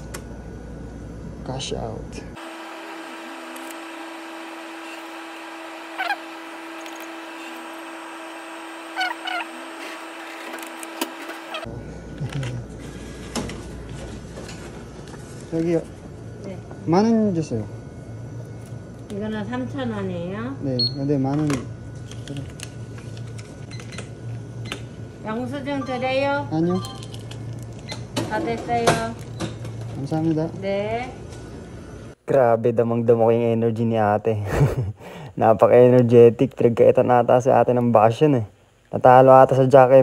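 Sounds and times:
steady low hum: 0.0 - 40.0
chirping machine sounds: 2.4 - 11.7
atm hum: 2.4 - 16.3.

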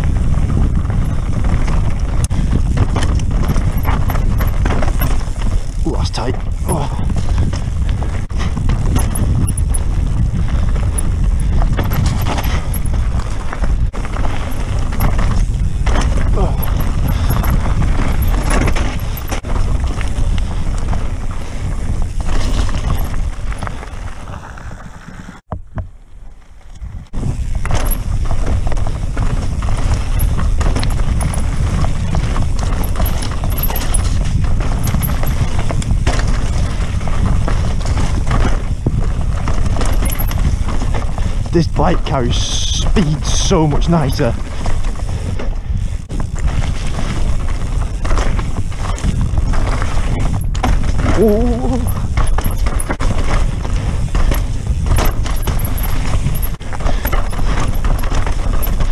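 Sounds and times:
wind buffeting microphone: 0.0 - 26.0, 26.6 - 58.9
mountain bike rolling over rocks: 0.0 - 58.9.

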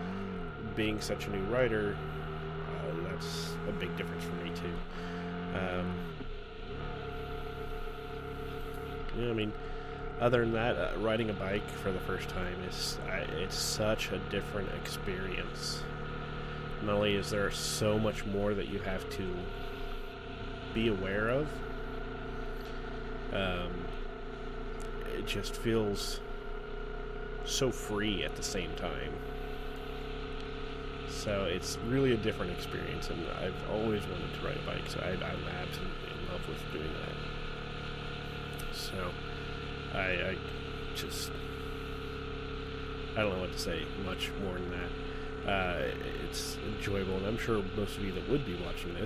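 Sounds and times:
motorcycle engine running steadily: 0.0 - 49.0.

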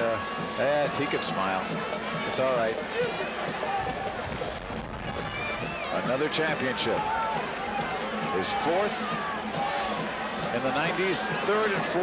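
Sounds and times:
outdoor crowd ambience: 0.0 - 12.0.

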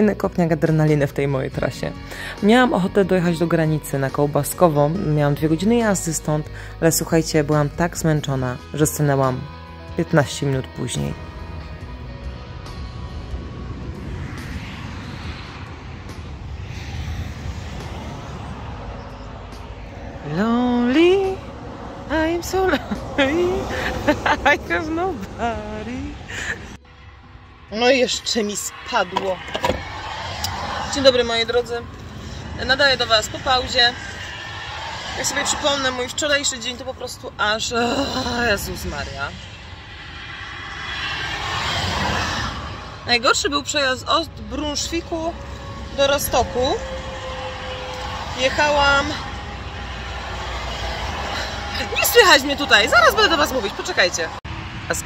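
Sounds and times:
road traffic rumble: 0.0 - 55.0
vehicle passing on motorway: 0.0 - 55.0.

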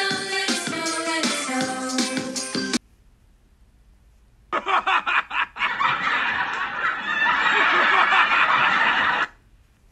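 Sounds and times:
person laughing: 4.5 - 9.3.

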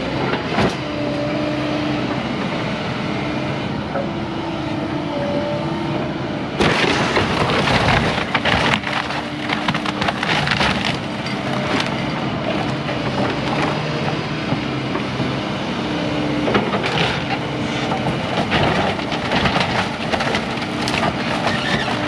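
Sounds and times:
excavator engine and hydraulic whine: 0.0 - 22.0
wood framing crashing and splintering: 6.6 - 12.0, 18.0 - 22.0.

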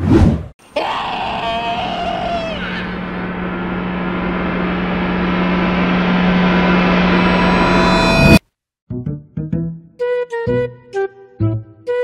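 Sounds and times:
long drawn-out cry: 0.6 - 4.0
low string drone: 2.0 - 8.4.

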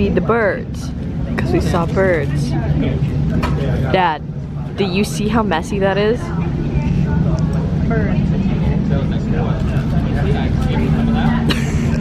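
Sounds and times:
low rumble of terminal: 0.0 - 12.0.

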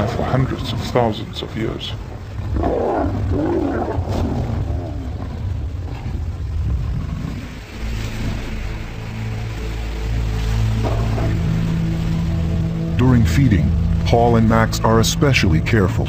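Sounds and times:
lions growling: 2.0 - 8.8
low sustained music: 5.3 - 16.0.

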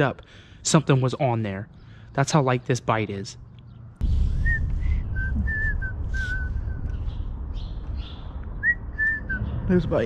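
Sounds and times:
steady low rumble: 3.9 - 10.0
man whistling a tune: 4.4 - 6.9, 8.6 - 9.5.

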